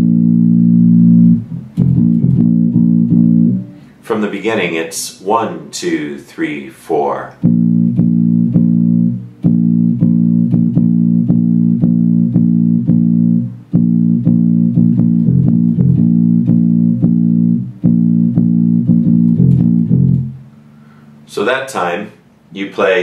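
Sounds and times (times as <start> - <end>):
electric bass guitar plucking: 0.0 - 4.0, 7.4 - 20.6.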